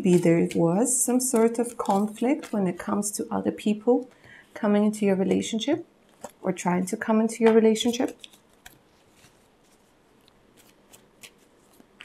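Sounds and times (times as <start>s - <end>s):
card deck rustling: 1.2s - 2.9s, 7.8s - 12.0s.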